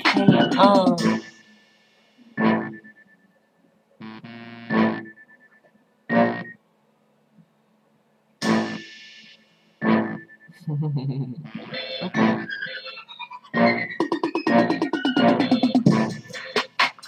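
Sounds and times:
synthesizer chord stabs: 0.0s - 3.0s, 4.0s - 5.3s, 6.1s - 6.6s, 8.4s - 10.4s, 11.4s - 17.0s.

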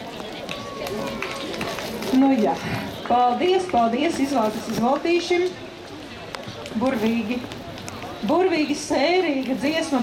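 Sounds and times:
low indistinct voices: 0.0s - 10.0s.

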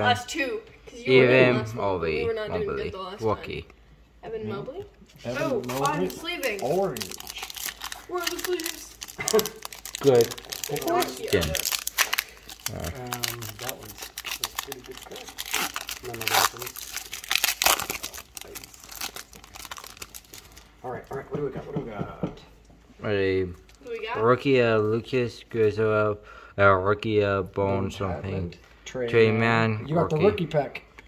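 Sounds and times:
foil card pack crinkling: 5.2s - 20.7s.

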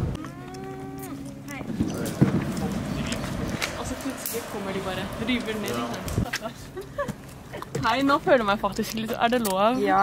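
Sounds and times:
outdoor background noise: 0.0s - 10.0s
indistinct voices talking: 0.2s - 8.8s.

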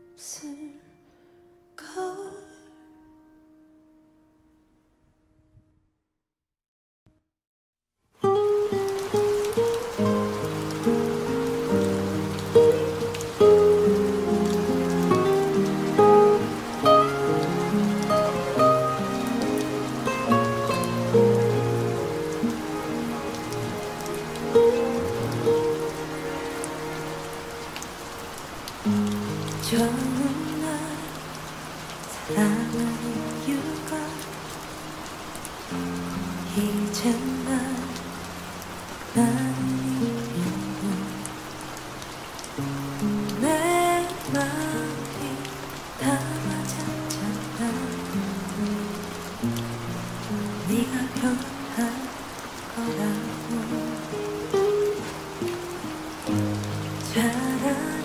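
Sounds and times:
steady rain: 8.2s - 58.0s.

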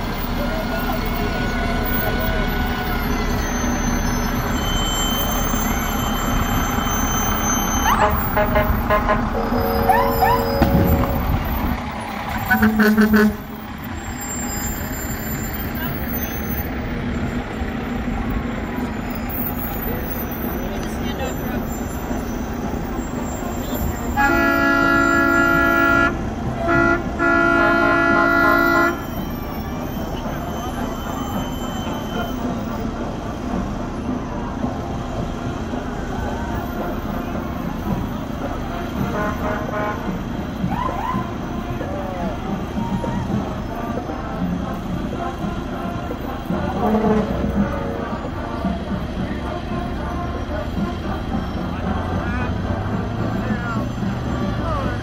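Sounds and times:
engine and street noise: 0.0s - 55.0s
fire engine air horn blasts: 6.2s - 13.6s, 24.0s - 29.2s, 39.0s - 40.3s, 46.7s - 48.3s.

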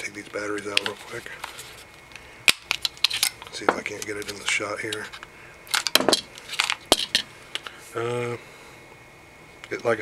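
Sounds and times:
batteries clicking and knocking: 0.2s - 1.6s, 2.5s - 7.7s.

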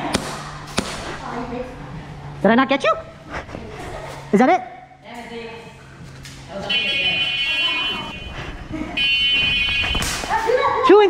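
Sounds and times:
sharp crack: 0.0s - 1.2s
electronic buzzer: 6.6s - 8.4s, 9.0s - 10.0s.

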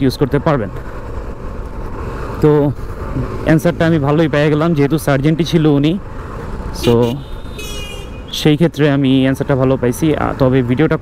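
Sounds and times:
man talking: 0.0s - 0.8s, 2.4s - 6.0s, 6.7s - 7.3s, 8.3s - 11.0s
motorcycle engine and road noise: 0.0s - 11.0s.

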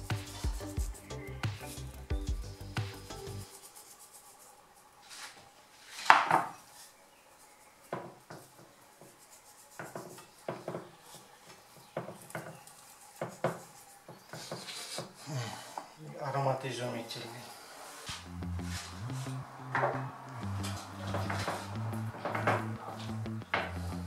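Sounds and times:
hands rubbing meat: 0.0s - 1.9s
scrape on clay dish: 13.2s - 15.2s.

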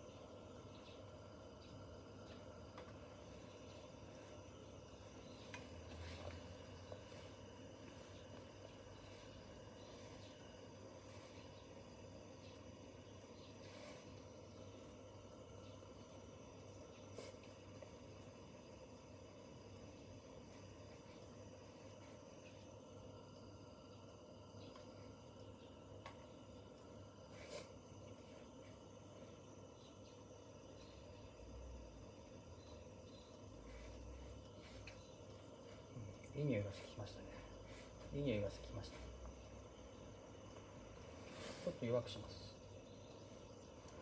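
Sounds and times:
gas stove hissing: 0.0s - 44.0s.

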